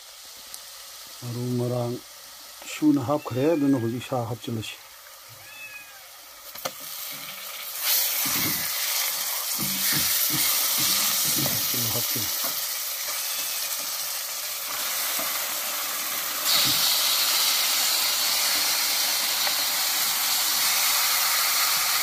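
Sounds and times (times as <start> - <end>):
meat sizzling in hot oil: 0.0 - 22.0.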